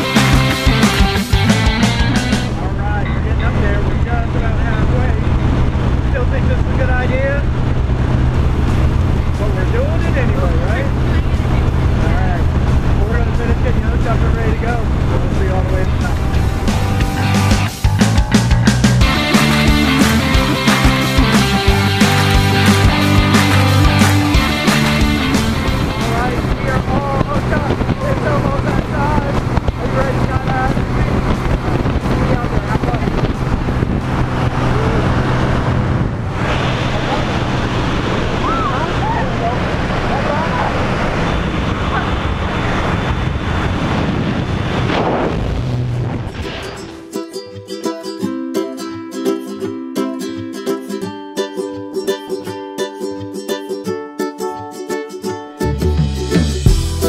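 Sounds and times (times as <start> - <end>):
plucked notes background music: 0.0 - 3.2, 15.7 - 29.2, 46.7 - 57.0
small plane engine drone: 1.3 - 18.0, 19.0 - 46.2
wind rush in cabin: 2.5 - 17.2, 25.0 - 47.0
people shouting: 38.4 - 39.4.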